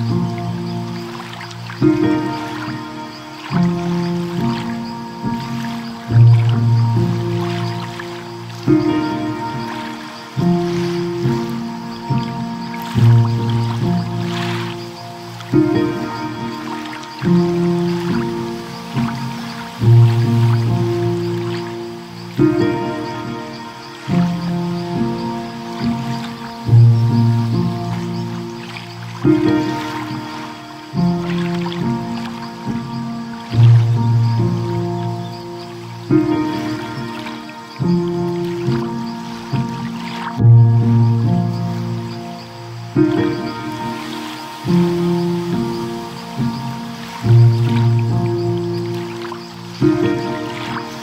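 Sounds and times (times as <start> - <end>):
ocean waves: 0.0 - 51.0
slow solo piano: 0.0 - 51.0.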